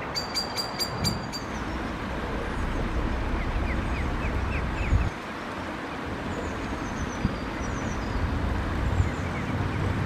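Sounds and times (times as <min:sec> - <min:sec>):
bird chirping: 0:00.0 - 0:05.2
steady rumbling background: 0:00.0 - 0:10.0.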